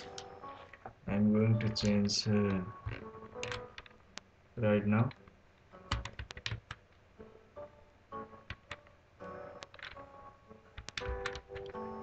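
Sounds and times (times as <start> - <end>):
keyboard key clicks: 3.4 - 4.0, 5.9 - 6.8, 9.6 - 10.0, 10.8 - 11.8.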